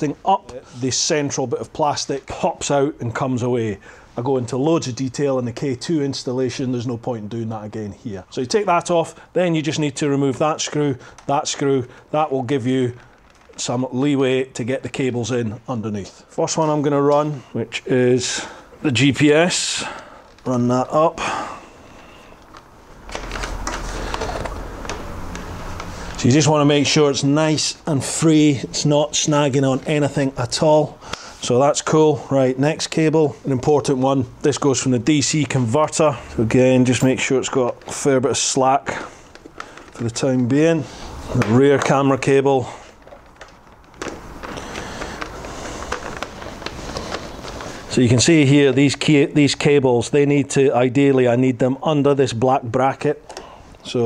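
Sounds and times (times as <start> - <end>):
cable rustling and scraping: 3.5 - 49.8.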